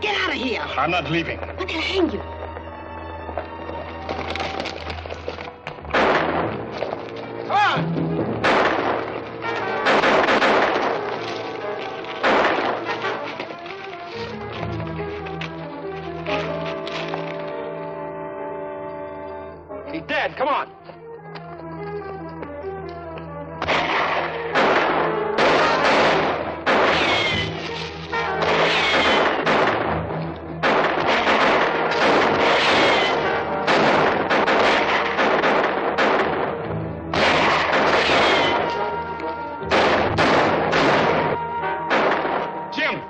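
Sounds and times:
dramatic background music: 0.0 - 43.0
gunshots with falling whine: 5.9 - 6.6, 8.4 - 9.1, 9.8 - 11.0, 23.6 - 27.2.

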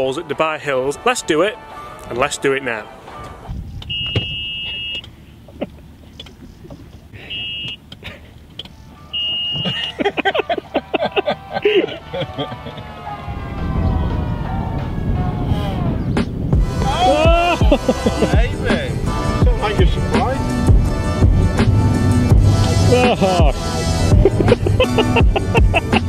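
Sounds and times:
music: 0.0 - 4.3, 8.7 - 26.0
high-pitched electronic beeps: 3.7 - 5.1, 9.1 - 10.0
voices: 9.1 - 21.2, 22.5 - 26.0.

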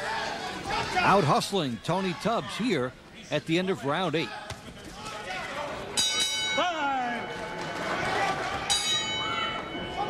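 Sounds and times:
crowd noise: 0.0 - 10.0
boxing ring bell ringing: 6.0 - 7.9, 8.7 - 10.0.

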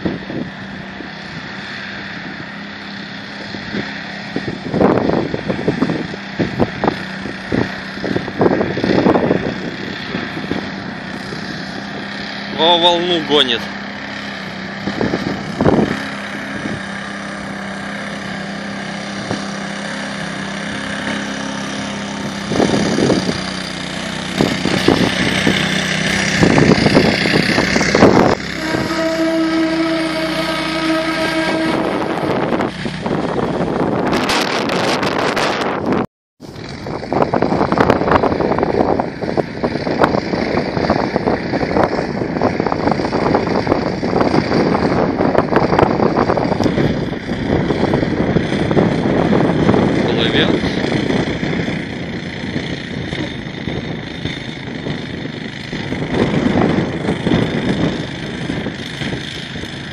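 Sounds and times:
water splashing and churning: 0.0 - 35.7
vehicle engine running: 0.0 - 59.9.

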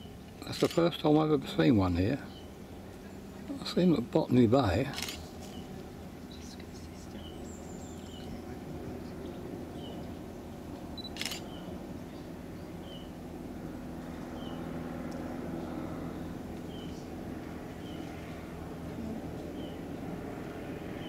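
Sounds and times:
camera shutter click: 11.0 - 11.5.

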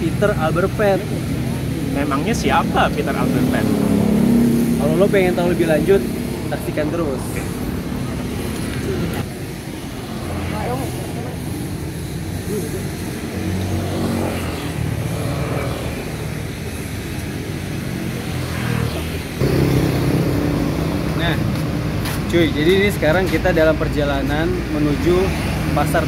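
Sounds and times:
car and motorbike engines passing: 0.0 - 26.0
loud vehicle passing close: 1.2 - 9.2, 18.2 - 22.1.

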